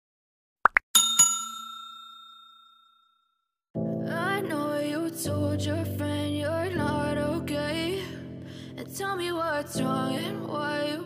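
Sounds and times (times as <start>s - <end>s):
notification bell dings: 1.0s - 3.1s.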